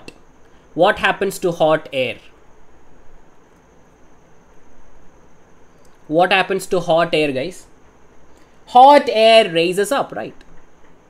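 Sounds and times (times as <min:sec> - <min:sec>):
faint steady hiss: 0:00.0 - 0:11.0.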